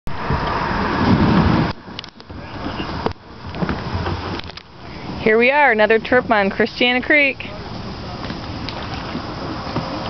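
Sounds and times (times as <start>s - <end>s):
loud rushing rumble: 0.1s - 10.0s.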